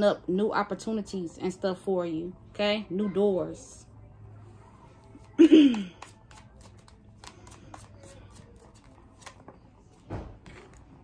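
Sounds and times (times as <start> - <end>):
cards being shuffled: 5.2 - 9.6.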